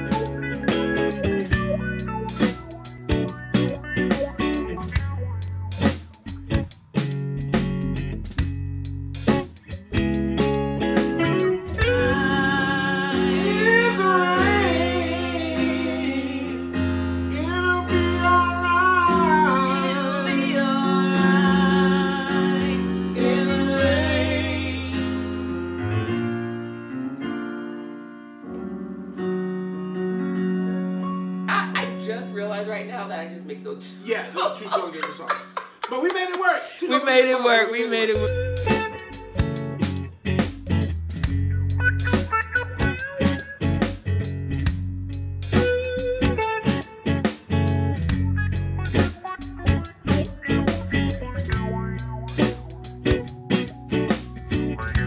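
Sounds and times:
bass line: 0:00.0 - 0:26.8, 0:38.1 - 0:55.0
plucked guitar notes: 0:00.0 - 0:35.3, 0:38.1 - 0:55.0
electronic keyboard chords: 0:00.0 - 0:36.6, 0:37.2 - 0:55.0.

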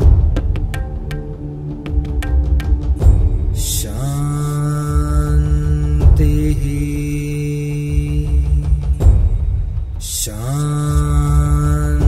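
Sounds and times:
low pulsing musical drone: 0:00.0 - 0:07.8
person chanting om: 0:00.0 - 0:09.0.

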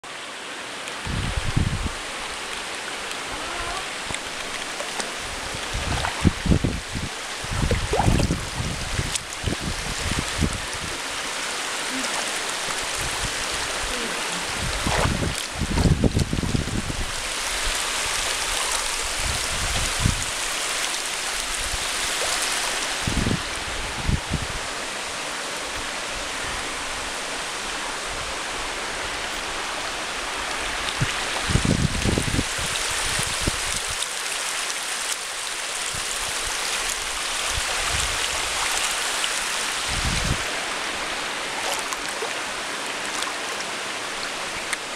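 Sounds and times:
water rushing over rocks: 0:00.1 - 0:44.9.

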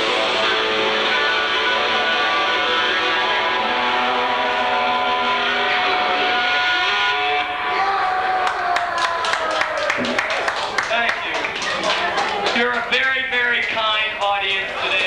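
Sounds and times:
electric guitar feedback sliding down: 0:00.0 - 0:08.4
hand claps: 0:08.4 - 0:13.8.

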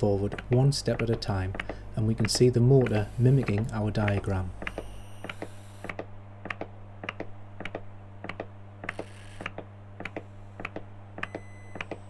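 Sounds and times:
steady low hum: 0:00.0 - 0:12.0
stepper motor clicks: 0:00.0 - 0:12.0.

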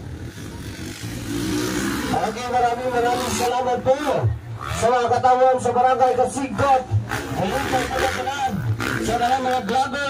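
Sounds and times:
dirt bike engines revving: 0:00.0 - 0:10.0.

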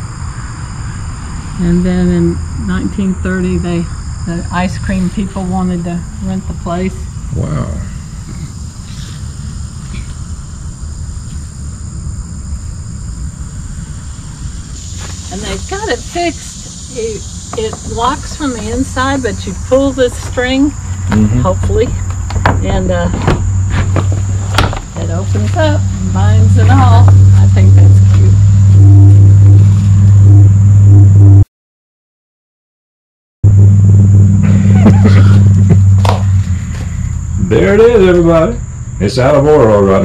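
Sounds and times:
insects droning: 0:00.0 - 0:31.4, 0:33.5 - 0:40.0
wind rumble on microphone: 0:00.0 - 0:31.4, 0:33.5 - 0:37.8
loud low hum: 0:00.0 - 0:31.5, 0:33.4 - 0:40.0.

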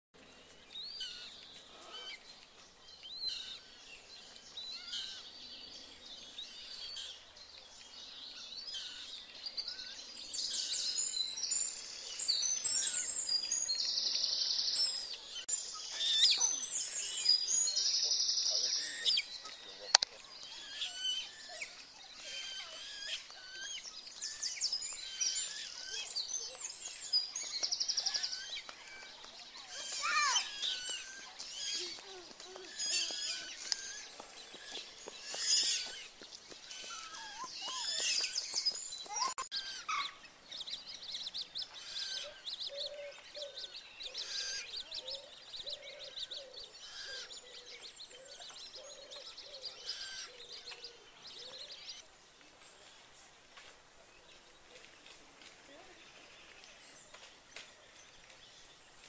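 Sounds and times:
wild birds chirping and trilling: 0:00.2 - 0:59.0.

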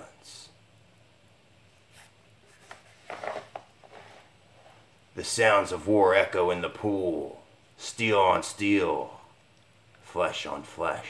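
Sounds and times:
paper rustle: 0:01.9 - 0:04.3
comic book pages turning: 0:01.9 - 0:04.8.

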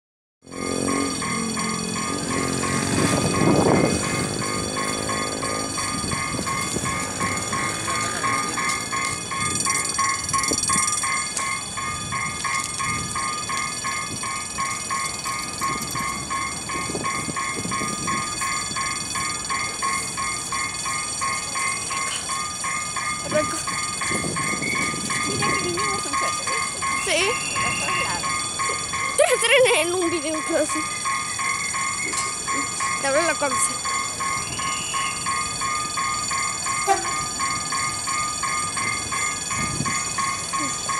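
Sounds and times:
diesel train approaching: 0:00.4 - 0:40.9
level crossing bell ringing: 0:00.5 - 0:40.9
train horn: 0:36.8 - 0:37.3.

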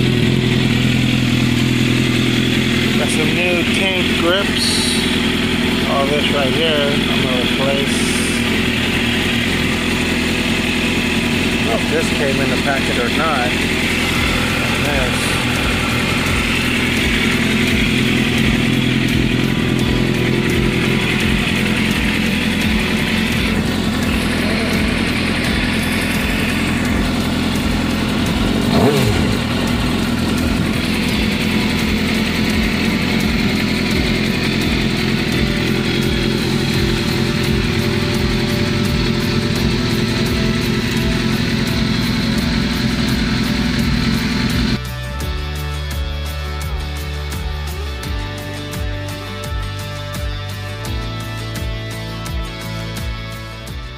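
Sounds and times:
motorcycle engine idling: 0:00.0 - 0:53.9.

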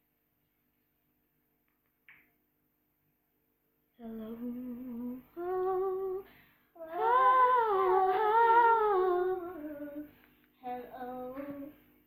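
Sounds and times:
woman singing wordless notes: 0:04.0 - 0:11.8.

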